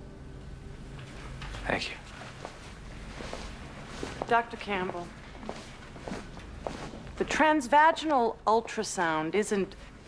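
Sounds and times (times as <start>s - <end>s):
footsteps on hard floor: 2.1s - 8.9s.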